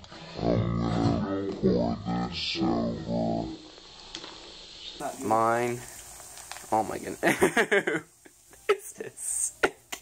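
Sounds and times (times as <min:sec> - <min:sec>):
soda fizzing hiss: 0:02.7 - 0:10.0.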